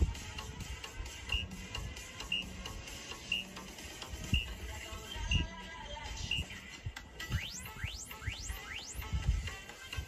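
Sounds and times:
background music with low beat: 0.0s - 10.0s.

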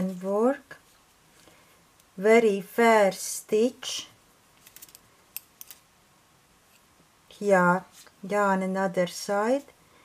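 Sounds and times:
knitting needles clicking: 4.6s - 5.8s.

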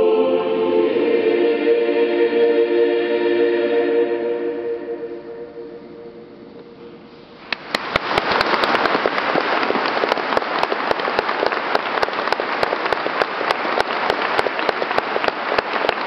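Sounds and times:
music: 0.0s - 7.1s
audience applauding: 7.5s - 16.0s.

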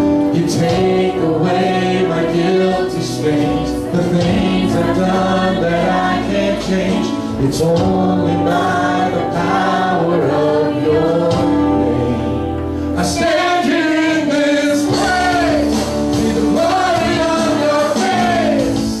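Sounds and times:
acoustic guitar: 0.0s - 19.0s
drums: 0.0s - 19.0s
keyboard: 0.0s - 19.0s
man singing: 0.2s - 12.4s, 13.0s - 19.0s
voices singing together: 0.3s - 19.0s.

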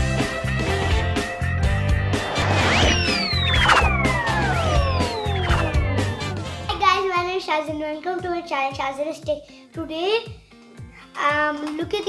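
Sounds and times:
upbeat jingle with beat and bass: 1.6s - 6.8s
whistle-like downward glides: 2.1s - 6.5s.

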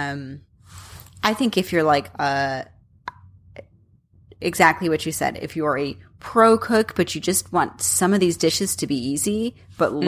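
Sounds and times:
woman speaking: 0.0s - 0.4s, 1.2s - 2.8s, 4.4s - 10.0s.

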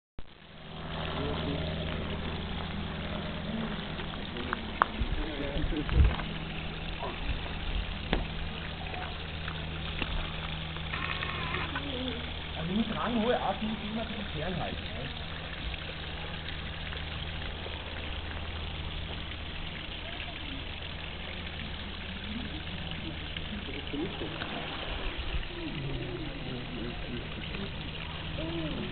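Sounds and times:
steady low hum: 0.2s - 28.9s
waterfall splashing into pond: 0.2s - 28.9s
faint voices: 0.9s - 7.7s, 19.7s - 28.9s
distant people talking: 0.9s - 18.2s, 19.2s - 28.9s.

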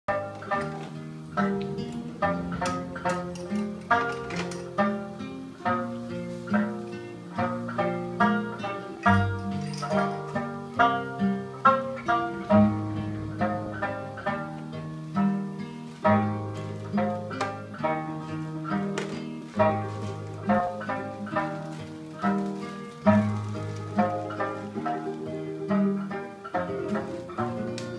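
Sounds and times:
acoustic guitar music: 0.1s - 27.9s.

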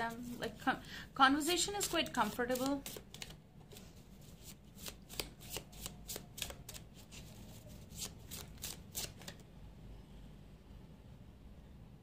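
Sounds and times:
cards being shuffled: 1.6s - 9.4s.

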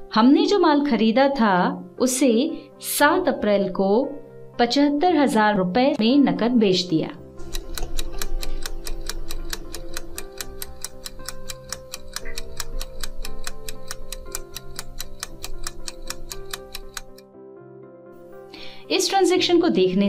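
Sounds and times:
soft sustained music: 0.0s - 20.0s
fast clock ticks: 7.4s - 17.2s.

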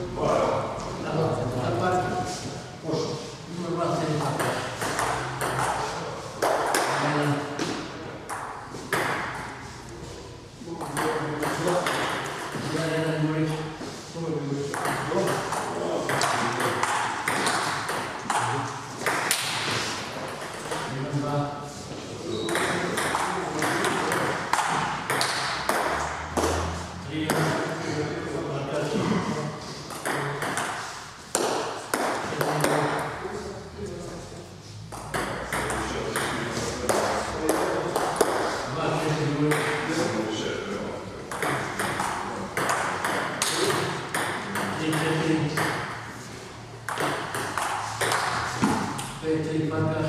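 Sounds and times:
table tennis ball pinging: 4.3s - 5.8s, 7.6s - 9.6s, 14.7s - 19.7s, 22.4s - 26.7s, 29.9s - 33.2s, 34.9s - 38.5s, 41.3s - 46.0s, 46.8s - 49.0s.

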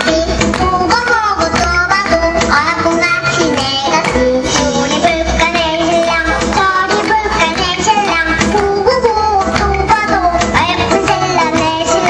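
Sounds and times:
instrumental accompaniment: 0.0s - 12.0s.

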